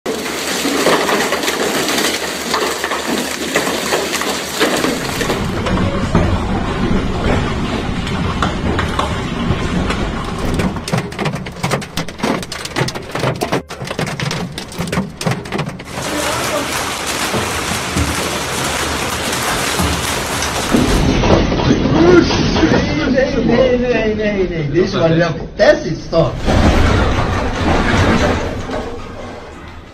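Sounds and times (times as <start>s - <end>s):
hailstones hitting a car: 0.1s - 22.2s
hail and heavy rain: 0.1s - 23.1s.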